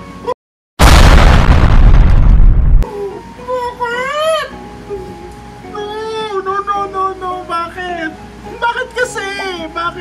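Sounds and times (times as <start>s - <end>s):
deep rumbling explosion: 0.8s - 2.8s.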